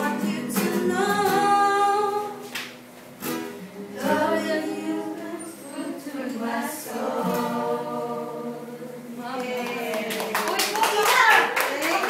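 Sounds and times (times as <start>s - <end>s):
group of voices singing: 0.0s - 2.5s, 3.6s - 9.4s
acoustic guitar: 0.0s - 10.6s
hands clapping: 2.5s - 2.8s, 9.4s - 12.0s.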